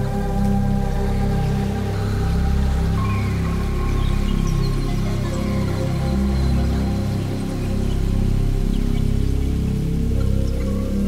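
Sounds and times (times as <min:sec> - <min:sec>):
deep bass drone: 0:00.0 - 0:11.0
synthesizer pad sustained notes: 0:00.0 - 0:11.0.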